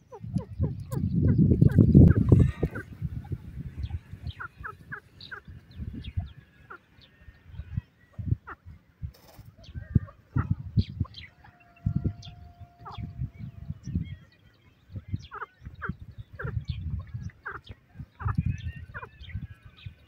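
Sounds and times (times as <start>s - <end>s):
francolin clucking: 0.0s - 13.2s, 15.2s - 19.8s
small birds chirping: 0.0s - 20.0s.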